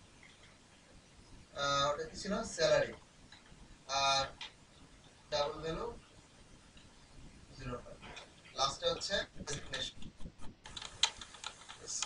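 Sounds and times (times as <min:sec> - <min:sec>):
computer keyboard typing: 0:09.4 - 0:12.0.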